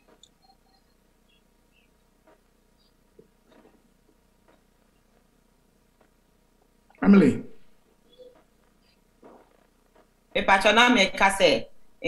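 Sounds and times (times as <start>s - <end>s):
woman speaking: 10.4s - 11.6s.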